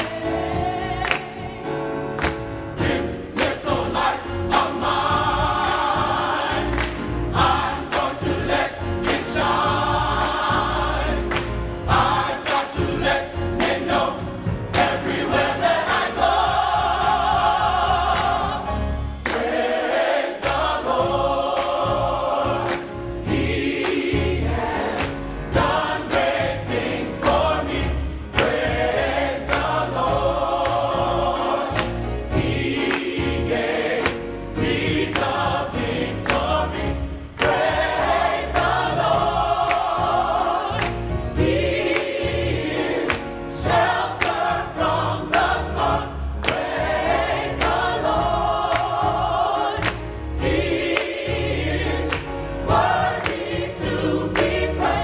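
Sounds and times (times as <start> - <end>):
drum kit beat: 0.0 - 55.0
gospel choir singing: 0.0 - 55.0
piano: 0.0 - 55.0.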